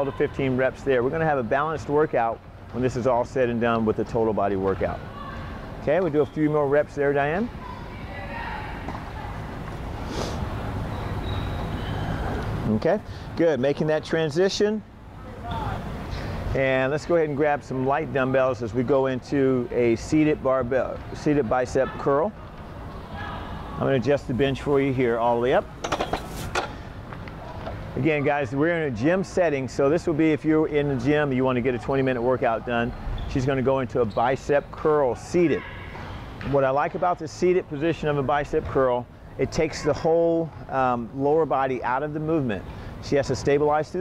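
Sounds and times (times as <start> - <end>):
low hum of room noise: 0.0 - 44.0
short hiss: 10.0 - 10.5.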